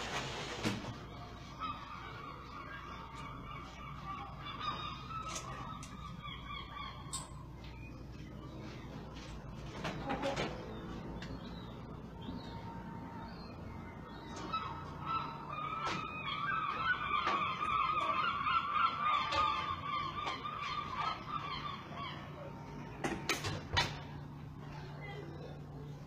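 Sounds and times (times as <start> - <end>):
birds honking: 0.1 - 23.0.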